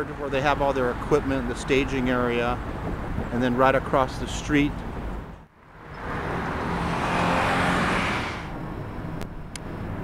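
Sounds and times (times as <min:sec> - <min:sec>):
car passing by: 0:05.7 - 0:09.2.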